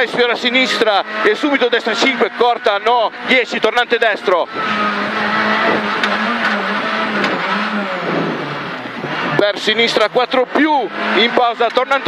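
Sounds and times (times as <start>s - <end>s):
rally car engine at high revs: 0.0s - 12.0s.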